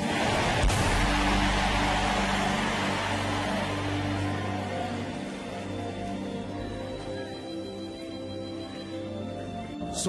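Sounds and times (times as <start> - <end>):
loud rushing noise: 0.0 - 4.8.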